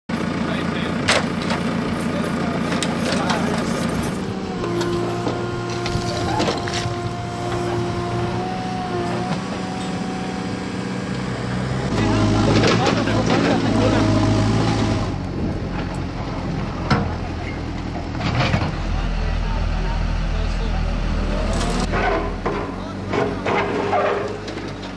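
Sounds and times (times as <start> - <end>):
engine running: 0.1 - 24.9
people's voices: 0.3 - 10.4, 11.2 - 24.8.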